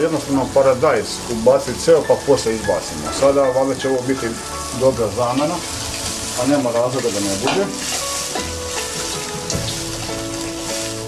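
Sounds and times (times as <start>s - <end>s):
man talking: 0.0s - 5.6s, 6.4s - 7.8s
stew sizzling in a pot: 0.0s - 11.0s.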